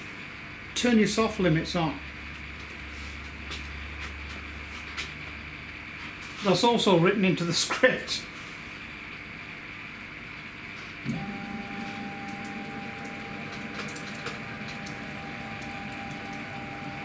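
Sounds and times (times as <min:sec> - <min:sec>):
stepper motor humming: 0:11.0 - 0:17.0.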